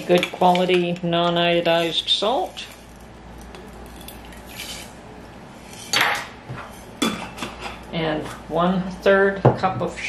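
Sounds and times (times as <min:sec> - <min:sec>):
kitchenware clattering: 0:05.7 - 0:07.9.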